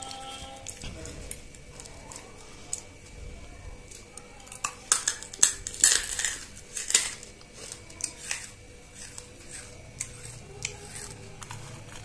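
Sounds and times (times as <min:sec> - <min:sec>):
crunchy food being chewed: 0:00.0 - 0:03.2, 0:03.8 - 0:12.0.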